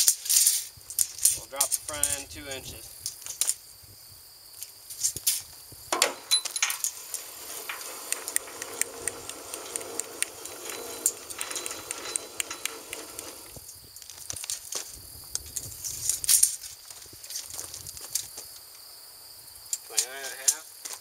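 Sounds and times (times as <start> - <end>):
trailer jack cranking rattle: 6.0 - 13.6.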